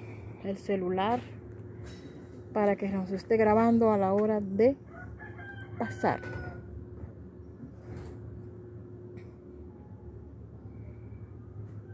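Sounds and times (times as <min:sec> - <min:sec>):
faint steady hum: 0:00.0 - 0:11.9.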